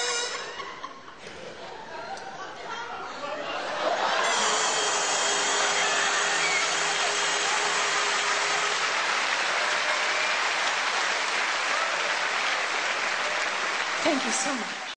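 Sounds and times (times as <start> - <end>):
audience applauding: 3.8 - 14.9.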